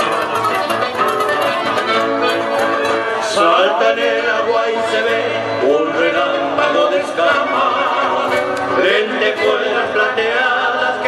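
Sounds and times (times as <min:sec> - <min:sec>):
accordion: 0:00.0 - 0:11.0
acoustic guitars: 0:00.0 - 0:11.0
person singing: 0:02.9 - 0:11.0.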